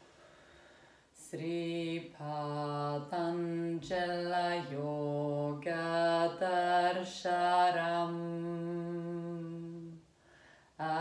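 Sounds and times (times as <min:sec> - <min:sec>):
woman chanting: 0:01.2 - 0:10.0, 0:10.8 - 0:11.0.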